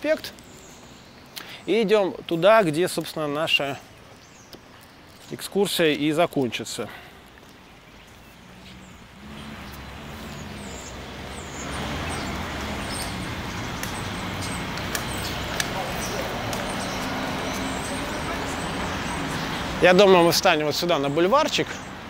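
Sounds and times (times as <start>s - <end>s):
city road traffic: 0.0s - 22.0s.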